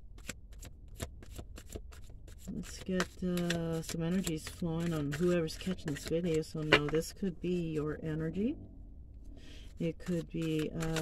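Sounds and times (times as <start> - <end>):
cards being shuffled: 0.2 - 7.1, 9.9 - 11.0.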